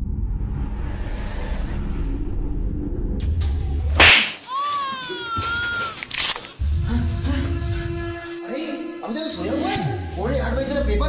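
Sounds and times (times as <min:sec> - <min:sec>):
loud sharp slap: 0:04.0 - 0:04.5.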